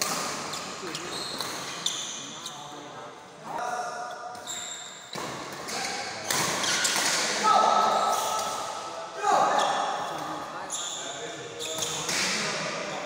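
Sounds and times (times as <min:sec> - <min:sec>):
shoes squeaking on court floor: 0:00.0 - 0:02.9, 0:04.0 - 0:07.2, 0:09.4 - 0:12.3.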